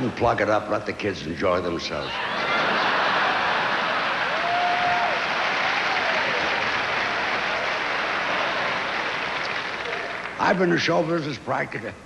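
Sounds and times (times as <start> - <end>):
large audience applauding: 2.4 - 10.7.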